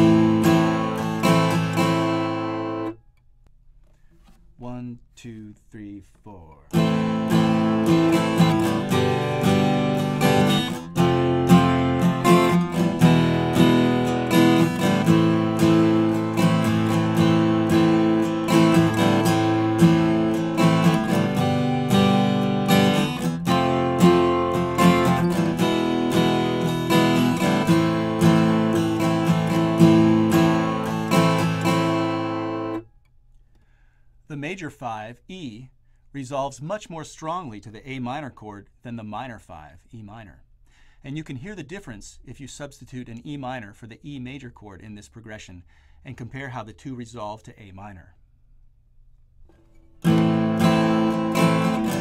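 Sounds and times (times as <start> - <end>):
acoustic guitar strumming: 0.0 - 3.2, 6.7 - 33.1, 49.5 - 52.0.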